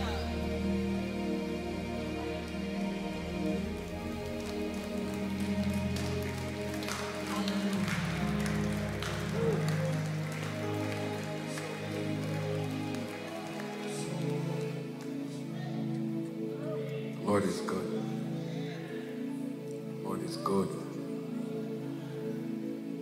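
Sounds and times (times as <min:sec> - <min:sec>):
held keyboard chords: 0:00.0 - 0:23.0.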